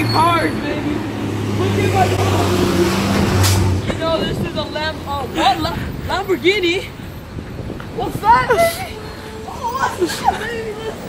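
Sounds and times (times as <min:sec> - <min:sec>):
vehicle engine droning: 0:00.0 - 0:06.1.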